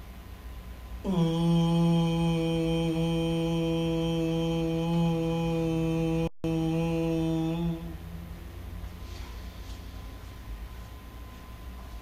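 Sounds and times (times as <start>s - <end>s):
man chanting low om: 1.0s - 8.5s.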